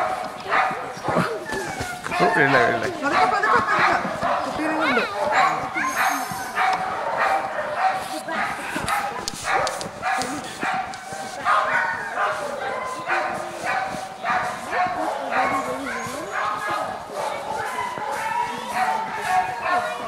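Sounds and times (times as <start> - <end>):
sled dogs barking and howling: 0.0 - 20.0.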